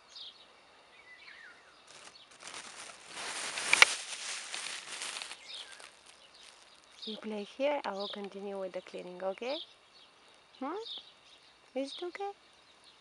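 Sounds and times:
faint bird chirps: 0.0 - 3.3, 4.6 - 13.0
rustling: 1.8 - 7.5.

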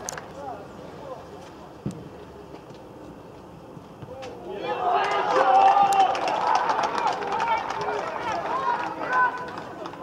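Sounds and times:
people shouting and yelling: 4.1 - 10.0.

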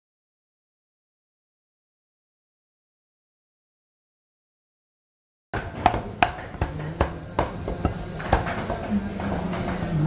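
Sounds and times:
cleaver chopping on wooden block: 5.6 - 8.5.

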